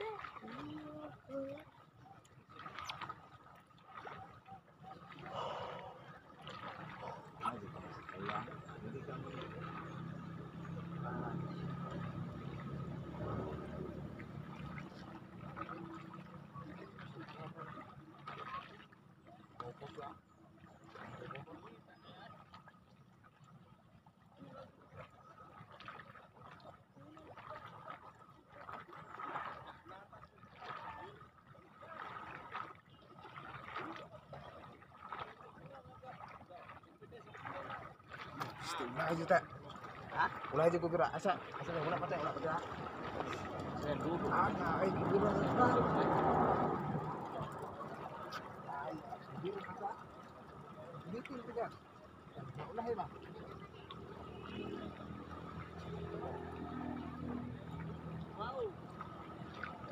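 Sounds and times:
faint indistinct voices: 3.8 - 22.8, 41.5 - 59.9.

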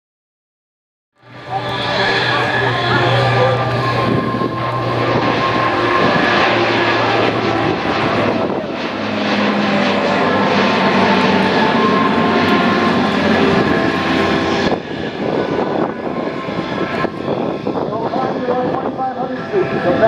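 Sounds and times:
propeller aircraft droning past: 1.2 - 20.0.

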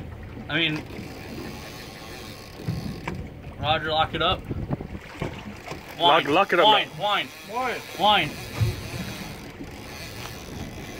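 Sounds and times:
sea noise: 0.0 - 10.9
wind: 0.0 - 10.9.

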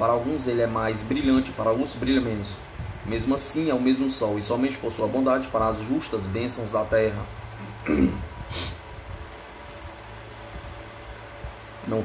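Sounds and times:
low room hum: 0.0 - 12.0
faint hiss: 8.4 - 8.9.

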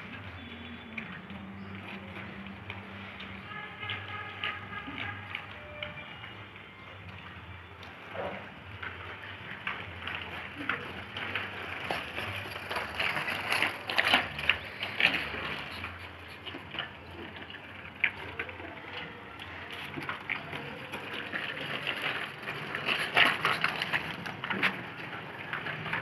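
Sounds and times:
bicycle wheels crunching on concrete: 0.0 - 26.0.

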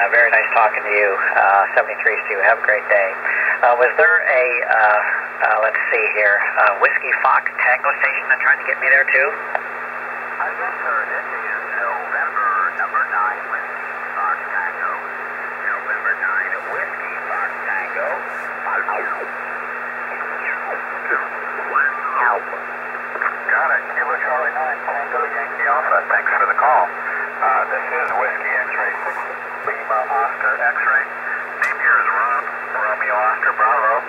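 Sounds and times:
garbled radio voices: 0.0 - 34.0
radio band noise hiss: 0.0 - 34.0.

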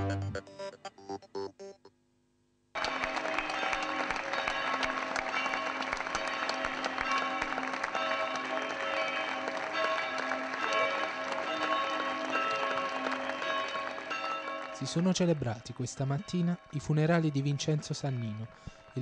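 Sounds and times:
crowd applauding: 2.8 - 16.0.

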